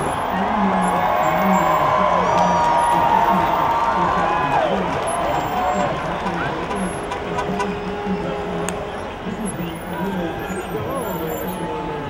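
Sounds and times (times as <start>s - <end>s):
many voices: 0.0s - 12.0s
traffic: 0.0s - 12.0s.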